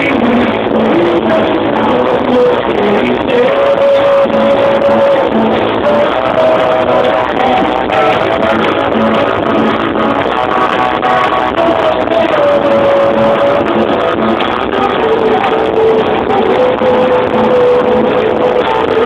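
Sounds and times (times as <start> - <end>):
live rock band playing: 0.0 - 19.0
singer holding long notes: 0.0 - 19.0.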